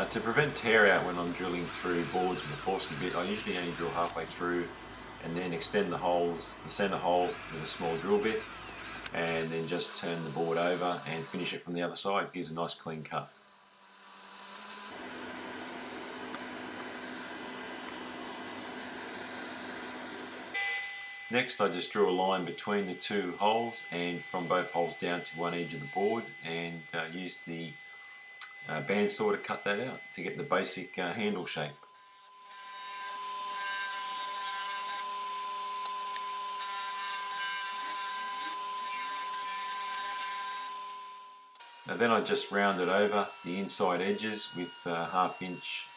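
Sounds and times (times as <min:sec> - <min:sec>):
machine with faint whine: 0:00.0 - 0:11.6
shop vacuum running: 0:00.0 - 0:11.6, 0:13.9 - 0:27.7
disc sander sanding wood: 0:00.0 - 0:11.7, 0:13.6 - 0:20.6, 0:21.2 - 0:45.9.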